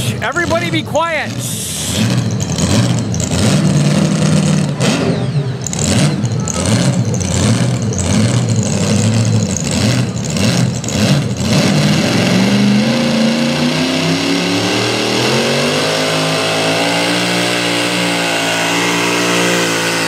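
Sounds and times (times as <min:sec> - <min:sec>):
tractor engine revving: 0:00.0 - 0:20.0.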